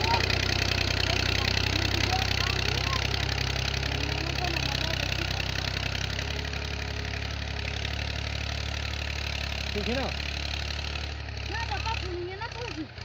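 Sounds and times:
tractor engine running: 0.0 - 13.0.

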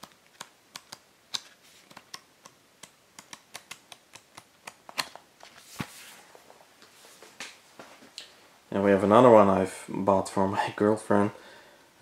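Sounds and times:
paper rustling: 4.9 - 7.5.

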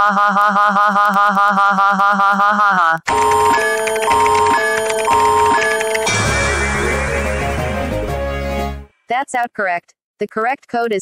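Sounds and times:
looping electronic beeping tune: 3.1 - 8.0.

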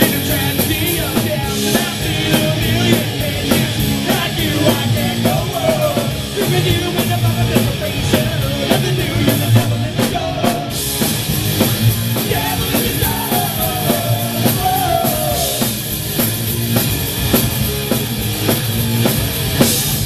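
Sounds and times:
drum kit beat: 0.0 - 20.0
electric guitar and bass: 0.0 - 20.0.

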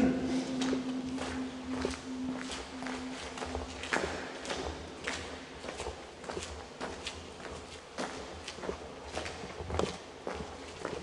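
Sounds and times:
footsteps on tunnel floor: 0.0 - 11.0.

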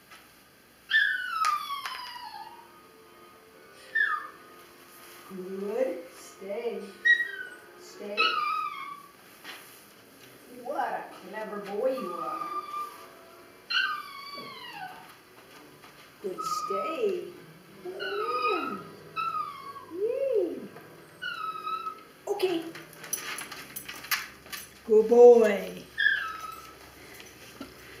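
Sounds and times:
dog whining: 0.9 - 2.8, 3.8 - 4.4, 7.0 - 9.2, 11.8 - 15.2, 16.2 - 22.8, 25.9 - 27.0.

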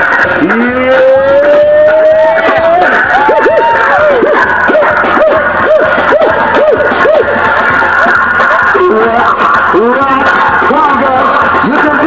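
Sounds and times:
crowd shouting and singing along: 0.0 - 12.0
loud party music: 0.0 - 12.0.

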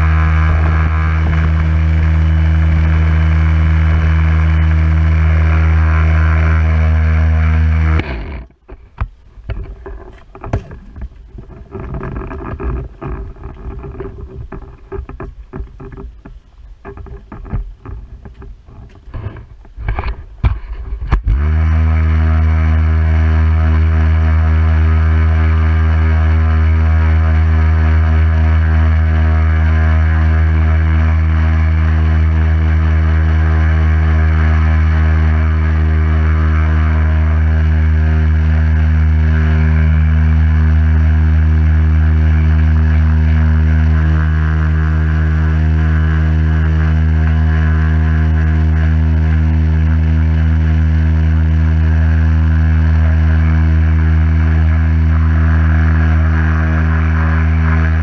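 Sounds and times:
pressure washer motor hum: 0.0 - 8.7.

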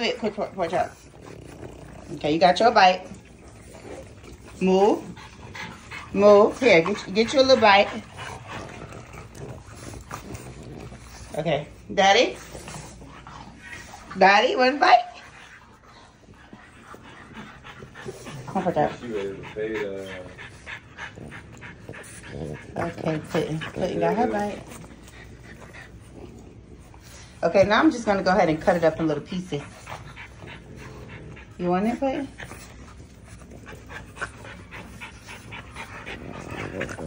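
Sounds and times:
faint dog sounds: 0.0 - 37.0.

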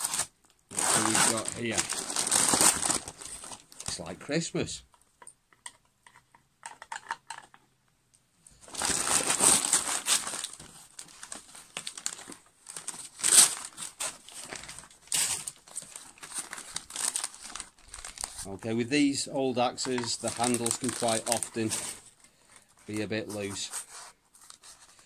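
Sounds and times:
paper crumpling and rustling: 0.0 - 4.1, 8.6 - 18.7, 19.6 - 25.0.

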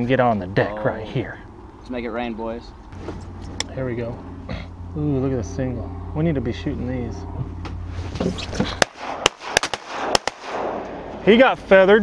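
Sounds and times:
shotgun blasts: 8.7 - 11.2.

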